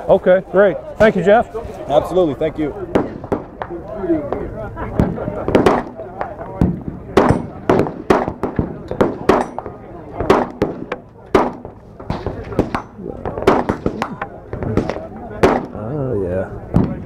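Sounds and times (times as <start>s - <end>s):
pistol shots: 2.9s - 15.8s.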